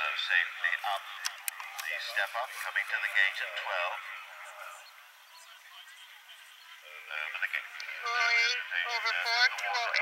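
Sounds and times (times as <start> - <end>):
commentator speaking: 0.0 - 4.7, 5.3 - 10.0.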